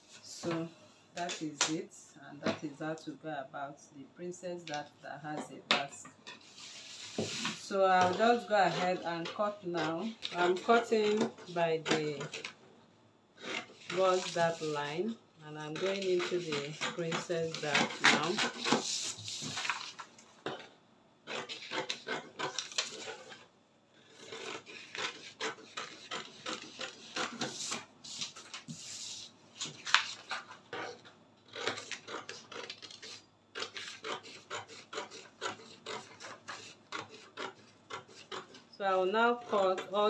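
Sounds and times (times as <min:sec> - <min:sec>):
paper rustling and crinkling: 0:18.1 - 0:20.2, 0:27.4 - 0:30.6
scissors snipping paper: 0:24.2 - 0:28.8, 0:31.5 - 0:38.6.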